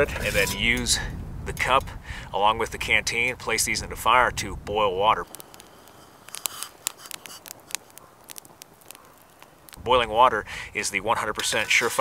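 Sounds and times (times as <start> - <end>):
campfire crackling: 0.0 - 12.0.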